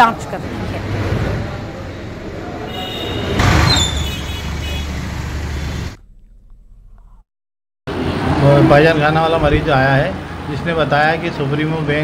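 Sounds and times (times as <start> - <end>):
road traffic rumble: 0.0 - 7.2, 7.9 - 12.0
vehicle passing: 0.1 - 6.0.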